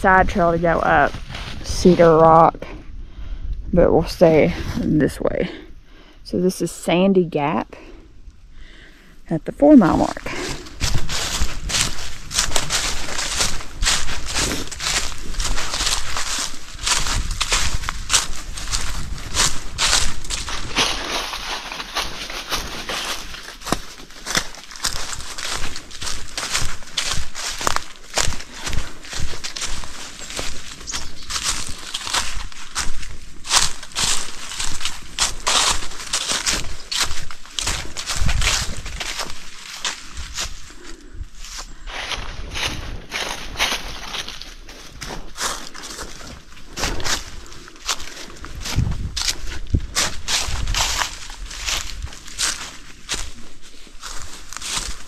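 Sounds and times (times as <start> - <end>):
footsteps on forest trail: 0.0 - 55.0.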